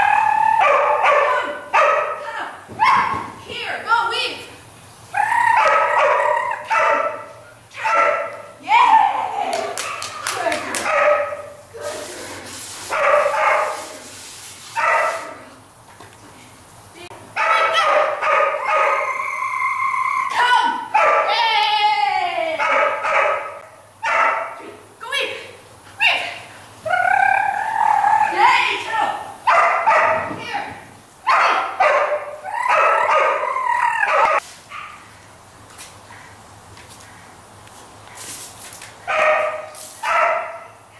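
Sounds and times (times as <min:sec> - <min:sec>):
dog barking and yipping: 0:00.1 - 0:02.2, 0:05.5 - 0:08.5, 0:09.8 - 0:11.6, 0:12.9 - 0:13.9, 0:14.8 - 0:15.3, 0:17.4 - 0:19.3, 0:20.9 - 0:21.4, 0:22.6 - 0:24.6, 0:29.5 - 0:30.3, 0:31.3 - 0:35.1, 0:39.1 - 0:40.8
dog whining: 0:32.5 - 0:34.4.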